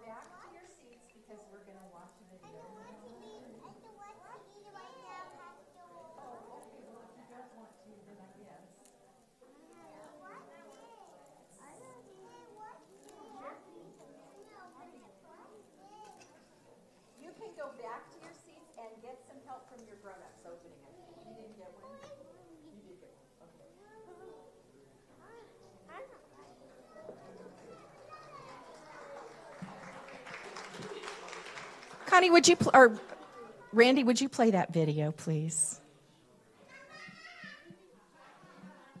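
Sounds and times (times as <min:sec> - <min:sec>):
murmured talk: 0:00.0 - 0:39.0
distant children chattering: 0:25.2 - 0:31.4
children's voices chattering: 0:25.2 - 0:35.8, 0:36.6 - 0:39.0.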